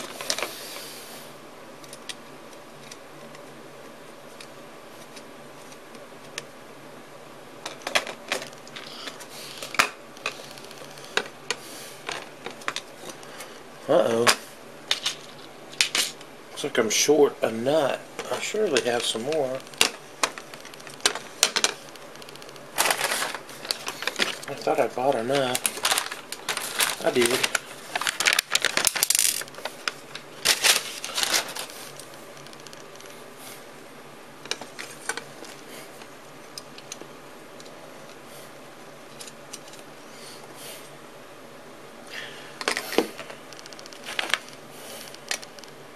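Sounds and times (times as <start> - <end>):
paper bag rustling: 17.7 - 33.0.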